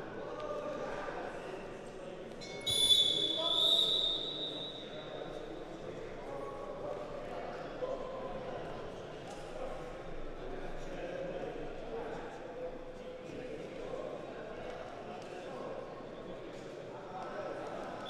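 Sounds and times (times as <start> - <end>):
background chatter: 0.0 - 18.0
shrill high-pitched signal tone: 2.6 - 4.8.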